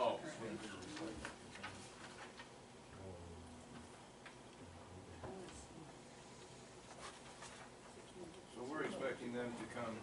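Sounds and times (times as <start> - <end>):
faint low murmur: 0.0 - 10.0.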